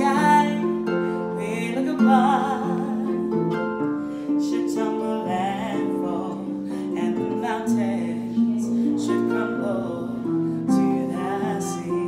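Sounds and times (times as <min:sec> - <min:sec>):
harp playing chords: 0:00.0 - 0:12.0
woman singing with vibrato: 0:00.0 - 0:12.0.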